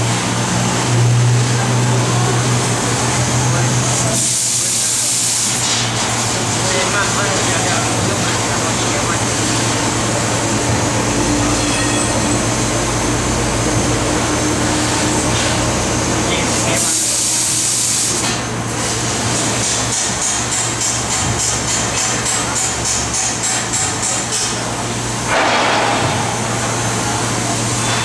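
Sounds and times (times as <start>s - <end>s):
laser cutting machine running: 0.0s - 28.0s.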